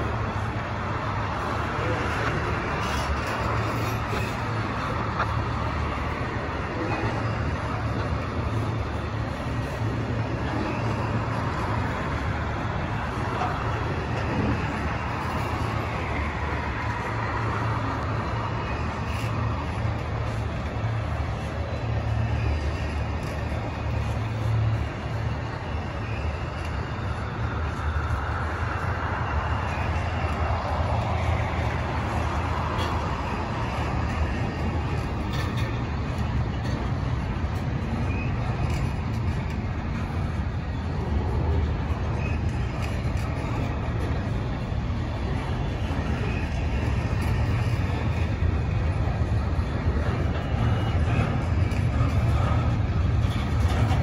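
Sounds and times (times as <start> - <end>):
freight train wheels rumbling: 0.0 - 54.0.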